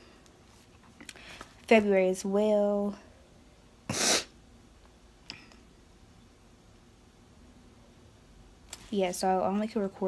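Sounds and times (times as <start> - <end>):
short sharp breath burst: 3.9 - 4.4.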